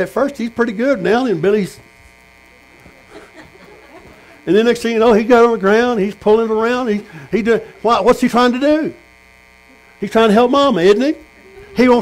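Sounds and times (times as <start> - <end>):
faint electrical buzz: 0.0 - 12.0
faint voice sounds: 2.2 - 4.5, 11.2 - 11.8.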